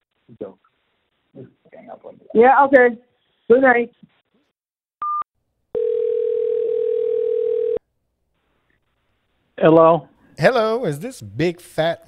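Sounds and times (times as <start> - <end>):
phone ringback tone: 5.8 - 7.8.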